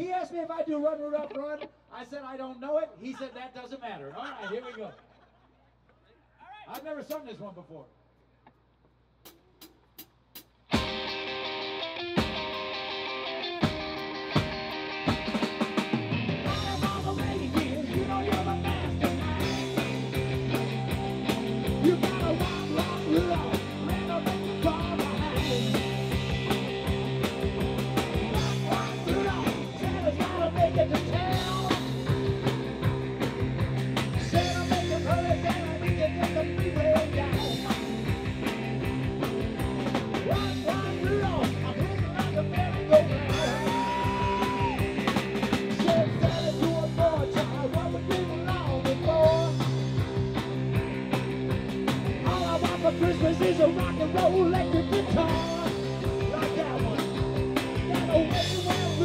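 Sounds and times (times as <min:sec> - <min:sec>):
rock band playing: 0:10.6 - 0:59.0
man singing into microphone: 0:16.5 - 0:20.1, 0:21.7 - 0:25.8, 0:28.3 - 0:32.0, 0:34.2 - 0:37.9, 0:40.3 - 0:44.8, 0:45.7 - 0:49.6, 0:52.2 - 0:57.1, 0:57.7 - 0:59.0.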